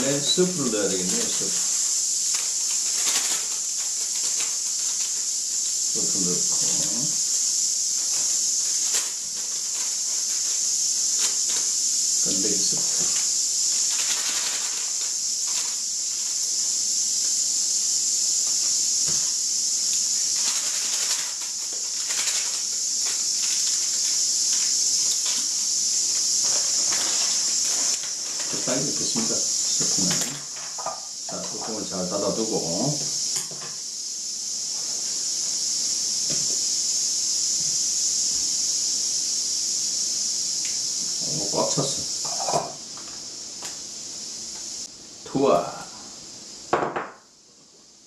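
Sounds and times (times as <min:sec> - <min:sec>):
steam hissing: 0:00.0 - 0:46.9
sachets crinkling being torn: 0:00.9 - 0:05.3, 0:08.0 - 0:15.8, 0:20.2 - 0:25.5.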